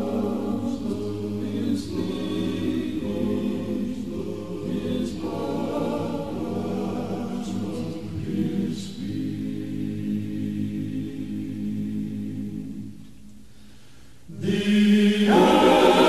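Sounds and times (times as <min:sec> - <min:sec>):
vocal group singing in harmony: 0:00.0 - 0:13.2, 0:14.3 - 0:16.0.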